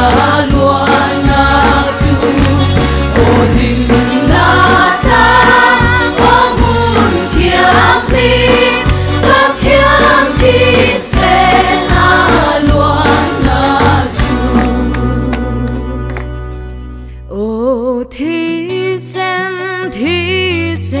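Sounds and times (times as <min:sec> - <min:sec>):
group singing along: 0:00.0 - 0:16.0
woman singing lead: 0:00.0 - 0:16.2, 0:17.2 - 0:21.0
band accompaniment: 0:00.0 - 0:17.0.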